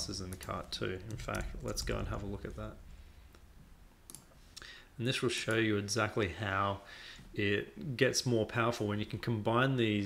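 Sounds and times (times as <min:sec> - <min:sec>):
keyboard and mouse clicks: 0:00.2 - 0:01.9, 0:04.1 - 0:04.3.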